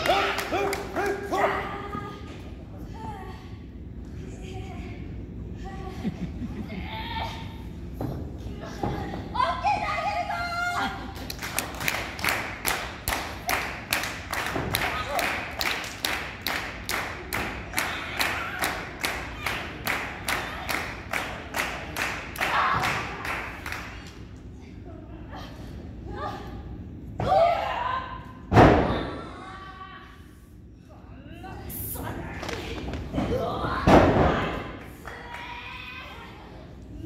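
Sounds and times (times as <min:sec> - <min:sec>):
woman shouting: 0:09.2 - 0:11.0, 0:27.2 - 0:28.3
audience clapping in rhythm: 0:11.3 - 0:23.9.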